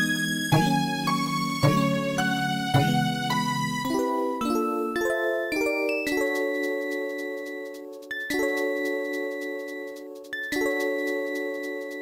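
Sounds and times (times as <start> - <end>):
chime-like music melody: 0.0 - 12.0.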